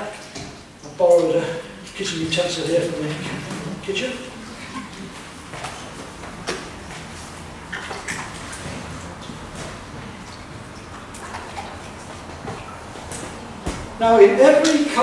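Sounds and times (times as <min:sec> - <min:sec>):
water sloshing and dripping: 0:00.0 - 0:15.0.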